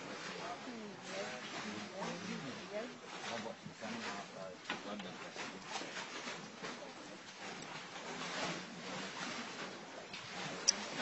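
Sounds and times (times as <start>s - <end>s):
muffled human voices: 0.3s - 5.8s.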